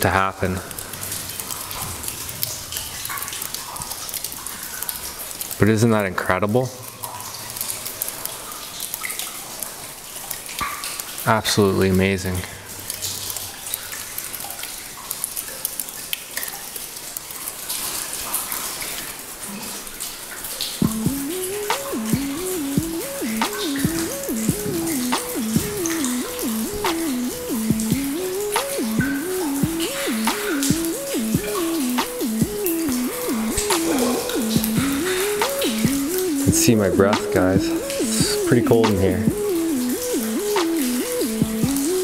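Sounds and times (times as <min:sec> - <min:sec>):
water dripping: 0:00.0 - 0:42.0
simple repeating melody: 0:20.8 - 0:42.0
seeping water hiss: 0:20.9 - 0:41.4.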